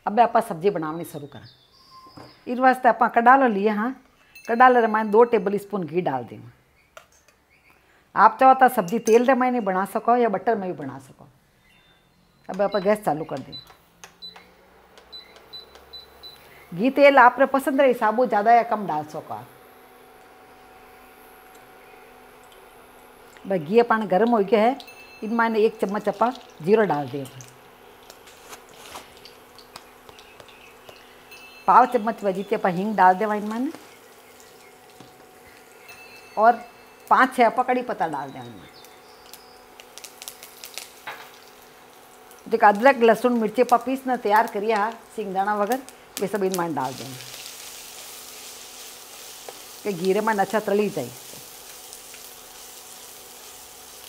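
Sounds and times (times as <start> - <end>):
leaves crackling in hot oil: 15.0 - 54.0.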